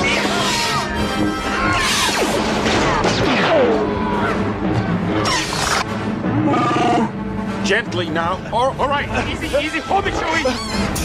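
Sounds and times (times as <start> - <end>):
blaster fire: 2.0 - 3.8.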